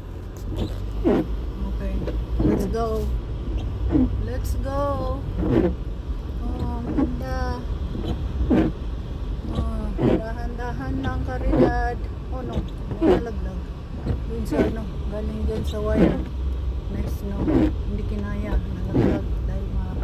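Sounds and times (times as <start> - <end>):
car driving on snow: 0.0 - 20.0
windshield wipers sweeping: 0.0 - 20.0.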